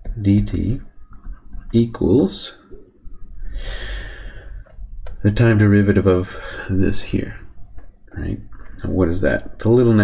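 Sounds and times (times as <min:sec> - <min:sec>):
soft hissy breath: 0:03.3 - 0:04.8.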